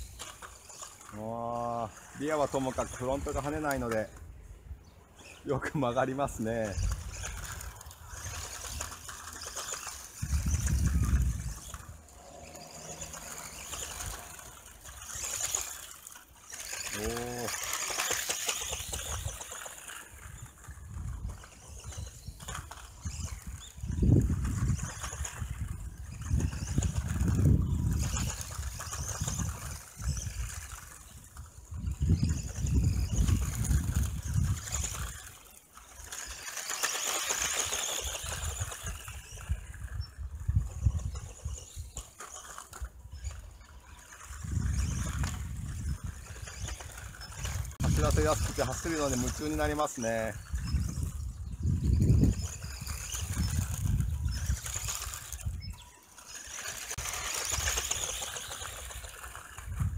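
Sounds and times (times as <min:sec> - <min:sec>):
rc car motor whirring: 0:00.0 - 0:59.9.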